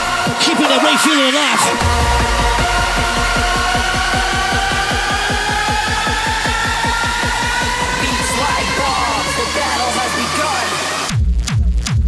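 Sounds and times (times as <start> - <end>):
hardstyle dance music: 0.0 - 12.0
rising synth tones: 1.7 - 11.1
cymbal crash: 1.8 - 8.3
held bass: 1.8 - 12.0.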